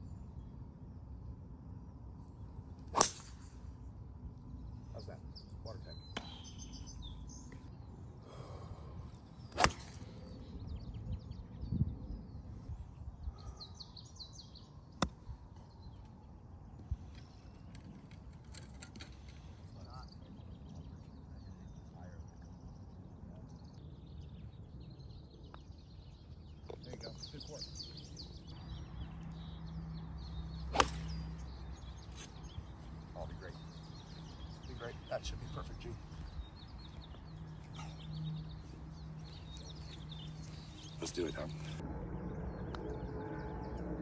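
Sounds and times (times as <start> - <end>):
birds chirping: 0.0 - 44.0
golf club striking ball: 2.9 - 3.6, 9.5 - 10.0, 30.6 - 31.6
low outdoor rumble: 14.6 - 44.0.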